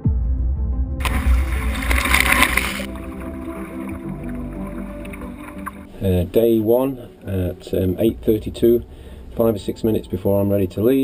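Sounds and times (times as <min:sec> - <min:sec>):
background music: 0:00.0 - 0:11.0
waves breaking: 0:01.0 - 0:06.1.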